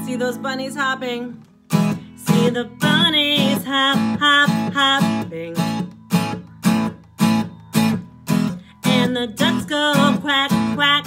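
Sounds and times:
acoustic guitar strumming: 0.0s - 11.0s
person singing: 2.1s - 5.9s, 8.7s - 11.0s.

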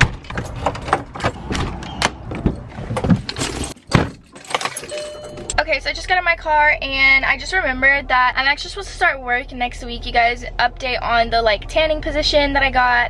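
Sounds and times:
keys jangling: 2.5s - 5.6s.

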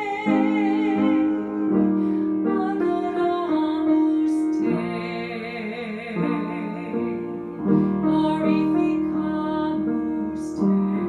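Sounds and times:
piano: 0.0s - 11.0s.

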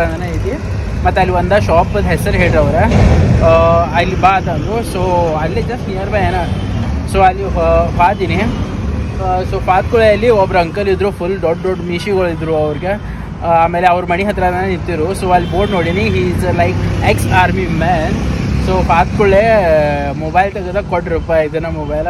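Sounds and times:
man talking: 0.0s - 22.0s
road traffic rumble: 0.0s - 22.0s.

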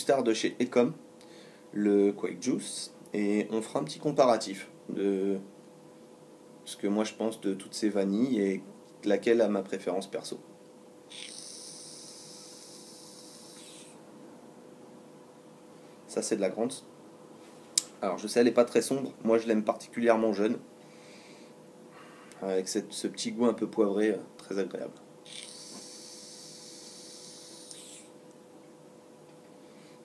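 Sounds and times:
e-cigarette hissing: 11.1s - 14.0s, 25.3s - 28.1s.

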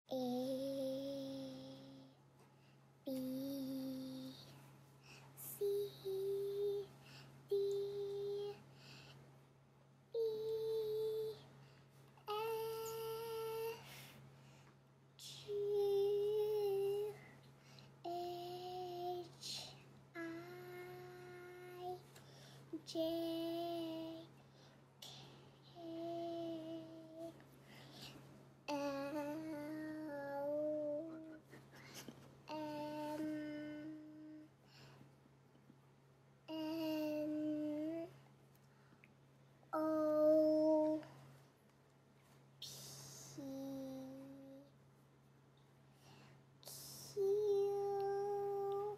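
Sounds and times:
girl singing long notes: 32.5s - 34.5s, 46.6s - 48.9s.

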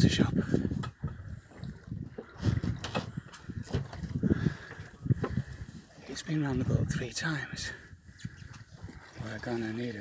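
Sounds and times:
water splashing against boat hull: 0.0s - 7.5s, 8.1s - 10.0s.

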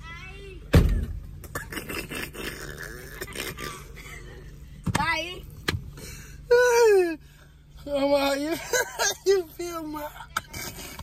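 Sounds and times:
low car interior hum: 0.0s - 11.0s
man laughing hard: 8.4s - 10.2s.

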